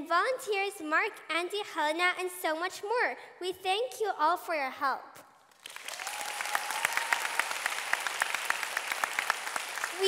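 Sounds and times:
audience applauding: 5.6s - 10.0s.

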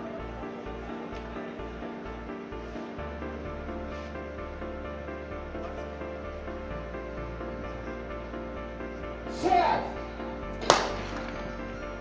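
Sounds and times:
music: 0.0s - 12.0s
starter's pistol crack: 10.6s - 11.3s.

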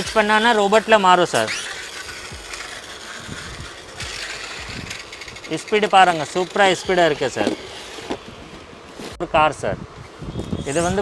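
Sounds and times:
toy car motor whirring: 0.0s - 8.4s.

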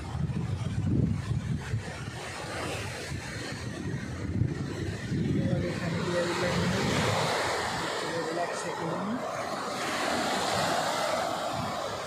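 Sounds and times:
surf breaking on sand beach: 0.0s - 12.0s
wind buffeting microphone: 0.0s - 12.0s.

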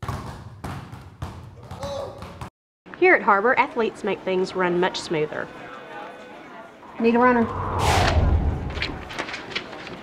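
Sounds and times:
basketballs bouncing on hard floor: 0.0s - 2.5s.

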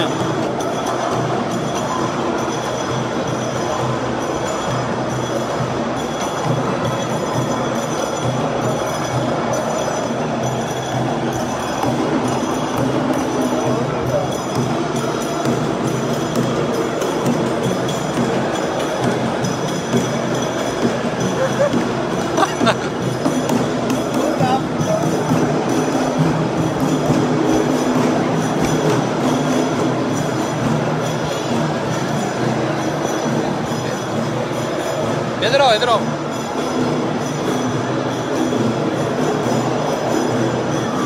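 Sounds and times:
crowded mall din: 0.0s - 41.0s
music playing: 5.4s - 41.0s.

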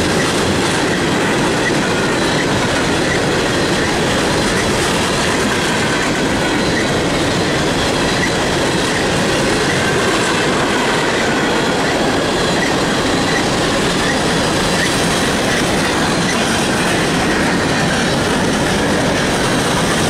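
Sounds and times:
high wheel squeal: 0.0s - 20.0s
rhythmic clickety-clack: 0.0s - 20.0s
train wheels rumbling on rail: 0.0s - 20.0s.

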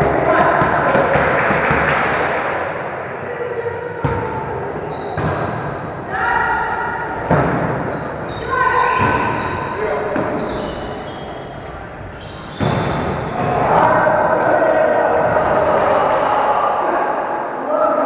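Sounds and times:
players calling out: 0.0s - 18.0s.

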